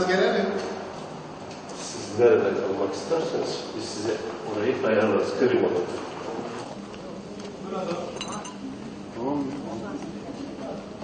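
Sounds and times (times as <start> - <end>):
faint voices talking: 1.7 - 11.0
light clinks: 8.2 - 8.6.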